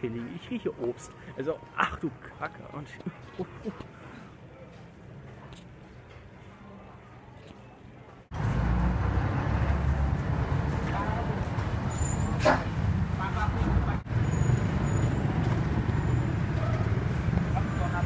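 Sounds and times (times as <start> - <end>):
low rumble of traffic: 7.9 - 18.0.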